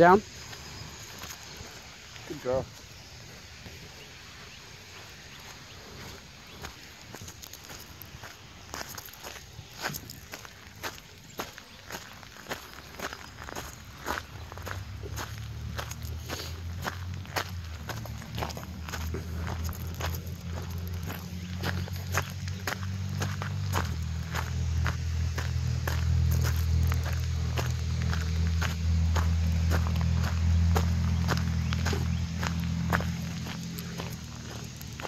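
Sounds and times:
footsteps crunching on gravel: 0:00.2 - 0:35.0
low rumble: 0:14.2 - 0:35.0.

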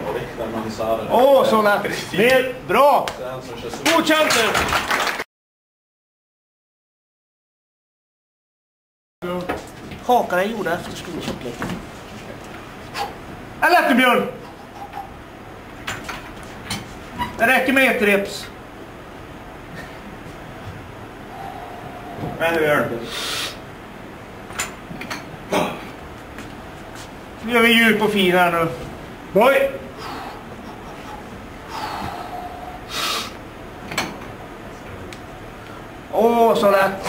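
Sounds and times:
low room noise: 0:00.0 - 0:05.2, 0:09.2 - 0:37.0
sharp hissing breath: 0:21.3 - 0:22.4, 0:23.0 - 0:23.7, 0:30.0 - 0:30.6, 0:31.6 - 0:33.4.

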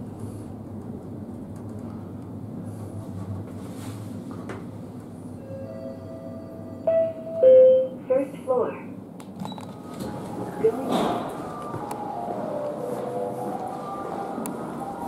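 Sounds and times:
recorded voice announcement: 0:08.0 - 0:09.0, 0:10.5 - 0:11.4.

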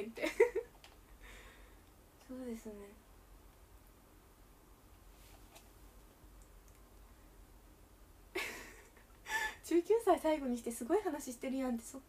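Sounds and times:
faint light clicks: 0:06.4 - 0:07.1.

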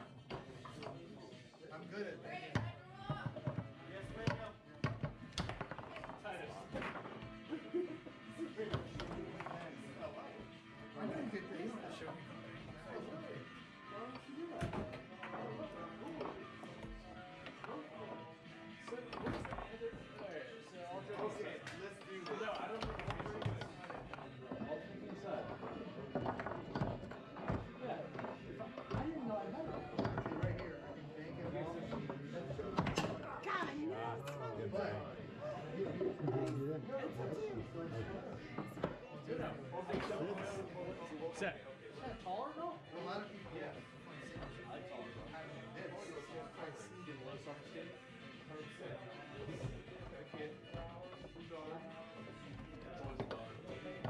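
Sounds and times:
music: 0:00.0 - 0:54.0
foosball ball knocking: 0:02.6 - 0:07.3, 0:21.1 - 0:30.8.

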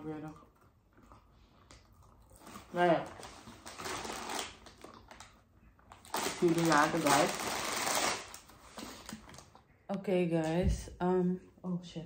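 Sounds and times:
rustling and crinkling: 0:01.0 - 0:09.7.

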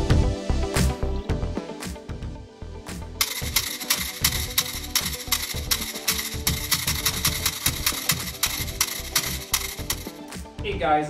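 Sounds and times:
background music: 0:00.0 - 0:11.0
plastic beads rattling: 0:03.2 - 0:10.1.

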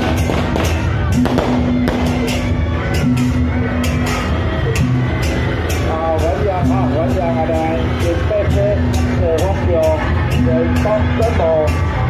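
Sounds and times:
firecrackers popping: 0:00.0 - 0:02.5
drum beat: 0:00.0 - 0:12.0
procession music: 0:00.0 - 0:12.0.

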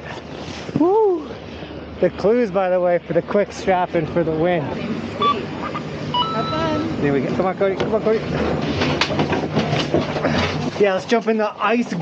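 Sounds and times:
gondola machinery hum: 0:00.0 - 0:12.0.

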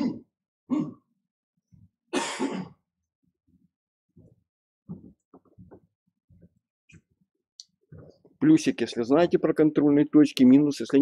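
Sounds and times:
man clearing his throat: 0:00.0 - 0:01.1, 0:02.2 - 0:02.8.

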